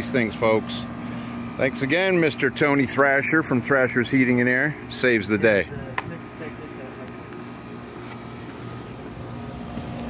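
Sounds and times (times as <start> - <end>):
air conditioner humming: 0.0 - 10.0.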